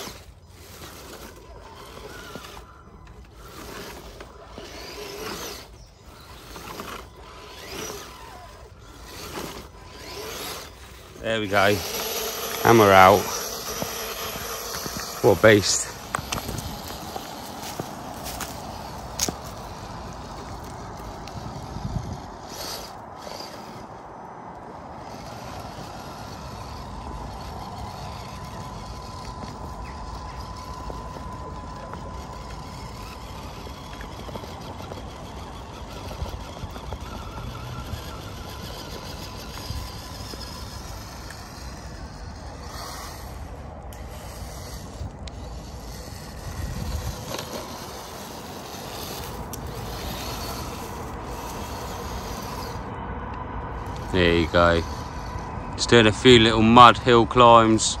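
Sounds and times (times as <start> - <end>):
electric motor and gears whining: 0.0 - 58.0.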